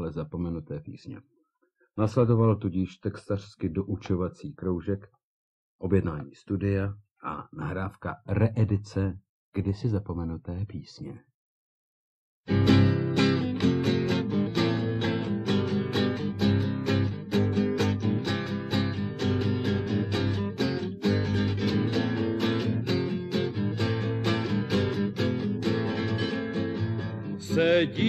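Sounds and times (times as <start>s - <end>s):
acoustic guitar strumming: 12.5s - 28.0s
man singing: 27.3s - 28.0s.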